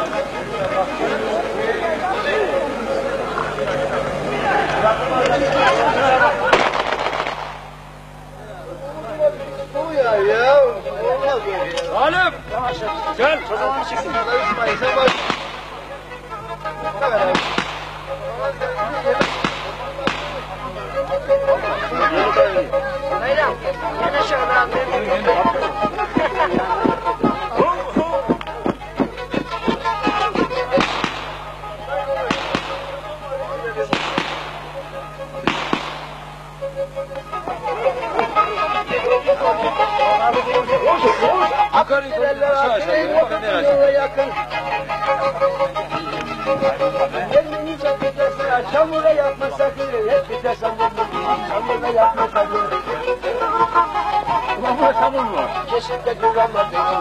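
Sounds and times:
fast wavering fiddle melody: 0.0 - 6.6, 8.2 - 57.0
people's voices: 0.0 - 57.0
rapid rattling bangs: 6.5 - 7.8, 15.0 - 15.9, 17.2 - 18.2, 19.1 - 20.6, 25.5 - 33.2, 33.8 - 36.4
faint bowed string music: 8.4 - 57.0.

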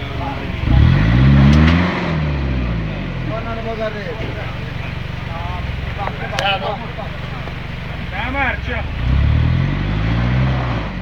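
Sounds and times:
car engine rumbling under load: 0.0 - 11.0.

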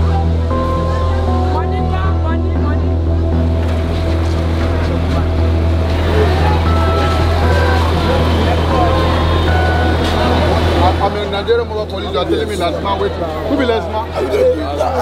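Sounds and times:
motor vehicle engine noise: 0.0 - 14.4.

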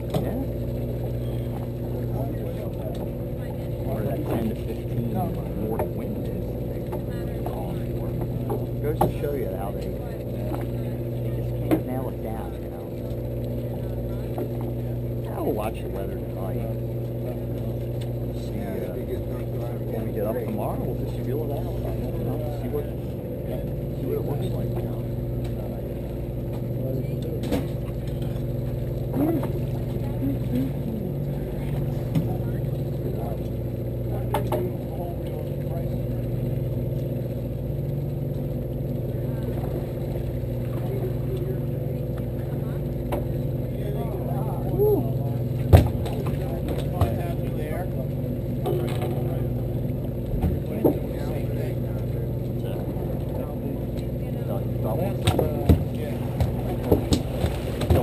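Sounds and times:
boat engine idling: 0.0 - 58.0.

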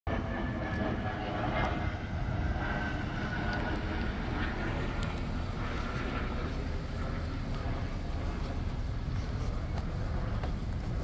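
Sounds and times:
traffic rumble: 0.1 - 11.0.

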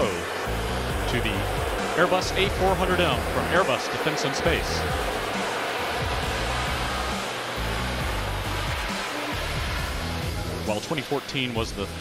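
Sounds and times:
background music with bass line: 0.0 - 12.0
turboprop engines running: 0.0 - 12.0.

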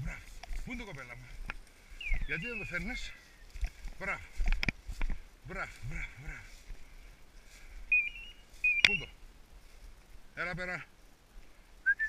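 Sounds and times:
short high-pitched beeps: 7.9 - 9.1.

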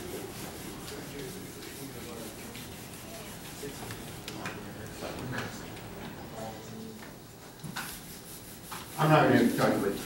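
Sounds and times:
rubbing and rustling: 7.7 - 10.0.

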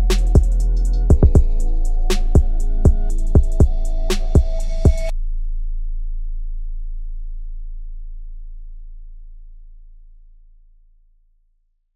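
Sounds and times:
deep sub-bass note: 0.0 - 10.6.

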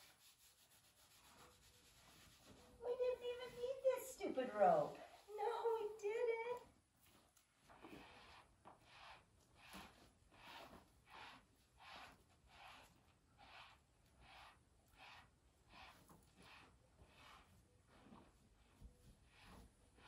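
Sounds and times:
gloved hand stroking animal coat: 0.0 - 20.0.

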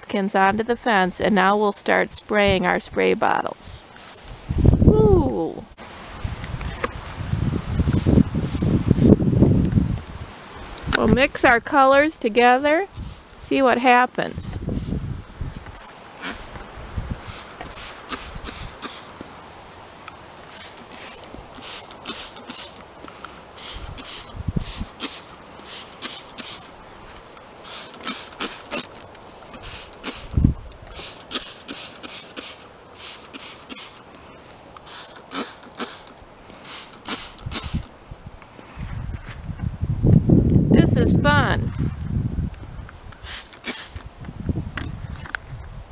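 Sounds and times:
spray bottle squirting: 4.0 - 4.3, 7.8 - 9.1, 12.4 - 13.4, 14.2 - 15.0, 15.7 - 16.6, 17.2 - 19.3, 20.5 - 26.7, 27.6 - 34.1, 34.8 - 37.9, 43.2 - 44.1.

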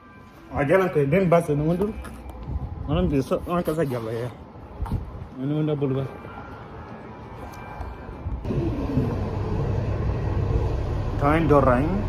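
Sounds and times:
bus engine and road rumble: 6.6 - 12.0.

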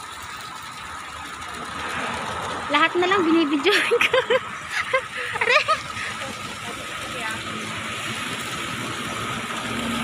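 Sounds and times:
fountain water splashing into pool: 0.0 - 10.0.

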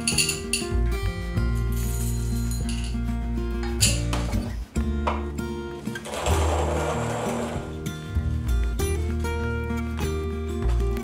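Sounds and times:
soft background music: 0.0 - 11.0
hand-cranked coffee mill grinding: 5.8 - 7.9.

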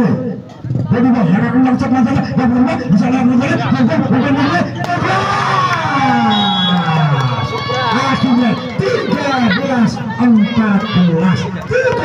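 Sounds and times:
man shouting: 3.3 - 12.0
crowd cheering: 3.6 - 12.0.

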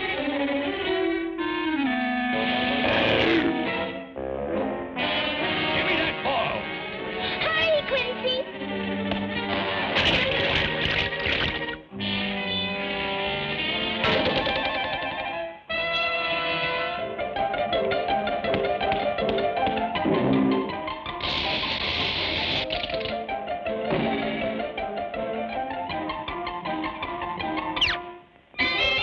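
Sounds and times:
cartoon score music: 0.0 - 29.0.

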